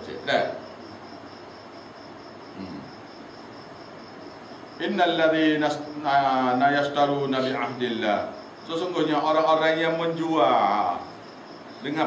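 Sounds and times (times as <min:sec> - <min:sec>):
faint hiss: 0:00.0 - 0:12.0
insect chirping: 0:00.0 - 0:12.0.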